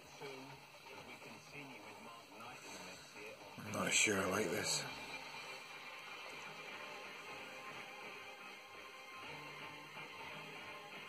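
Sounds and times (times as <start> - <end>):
faint music from a radio: 0.0 - 11.0.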